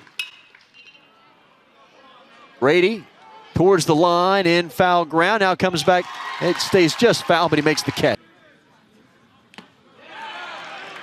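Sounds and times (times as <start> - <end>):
metal bat hitting baseball: 0.1 - 0.6
faint crowd murmur: 1.0 - 3.6.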